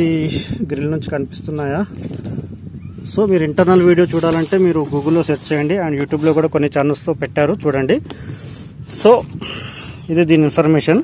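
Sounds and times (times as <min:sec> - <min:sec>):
man talking: 0:03.1 - 0:08.0, 0:08.9 - 0:09.4, 0:10.0 - 0:11.0.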